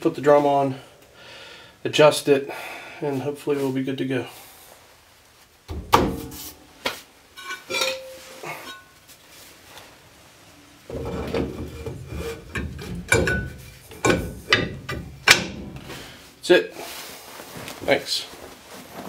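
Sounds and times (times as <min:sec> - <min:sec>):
metal-on-metal scraping: 0:07.4 - 0:08.9, 0:10.9 - 0:16.2.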